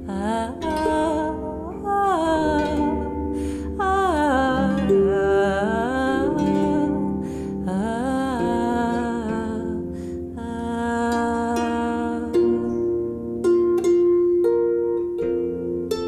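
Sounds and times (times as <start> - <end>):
harp music: 0.0 - 16.0.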